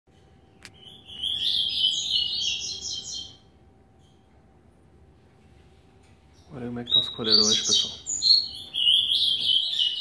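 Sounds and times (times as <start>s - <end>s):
bird singing high notes: 0.4s - 4.2s, 6.3s - 10.0s.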